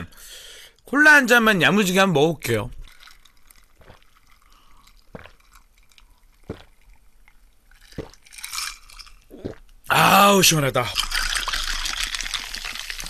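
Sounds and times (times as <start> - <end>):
person gulping a drink: 2.8 - 10.1, 10.8 - 13.0.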